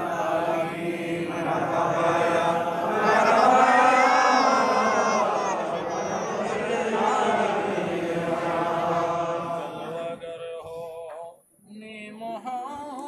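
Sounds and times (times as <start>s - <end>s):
men chanting together: 0.0s - 11.1s.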